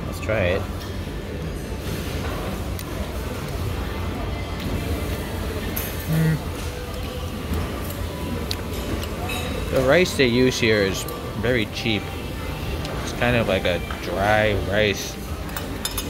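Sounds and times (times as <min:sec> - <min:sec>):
distant diners' voices: 0:00.0 - 0:16.0
restaurant music: 0:00.0 - 0:16.0.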